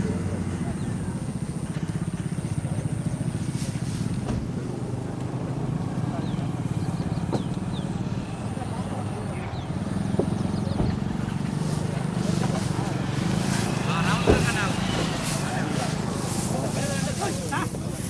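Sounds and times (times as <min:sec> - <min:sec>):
vehicle engine idling: 0:00.0 - 0:18.0.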